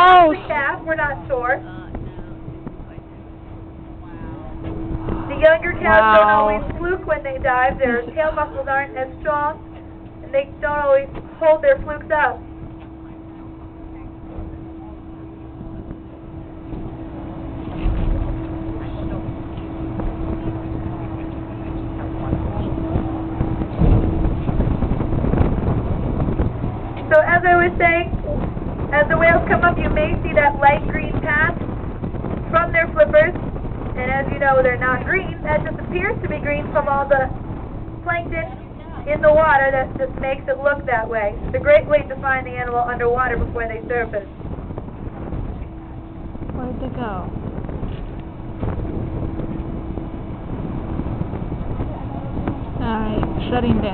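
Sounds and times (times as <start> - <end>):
boat running noise: 0.0 - 53.9
steady hum: 0.0 - 53.9
wind buffeting microphone: 0.0 - 53.9.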